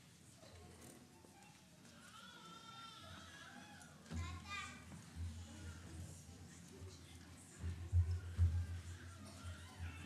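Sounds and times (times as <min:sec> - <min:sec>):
children's voices: 0:01.4 - 0:05.9
child's high-pitched voice: 0:04.1 - 0:04.9.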